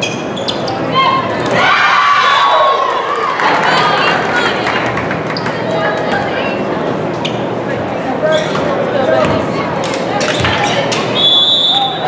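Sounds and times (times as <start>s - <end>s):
crowd chatter: 0.0s - 12.0s
referee's whistle: 11.2s - 12.0s.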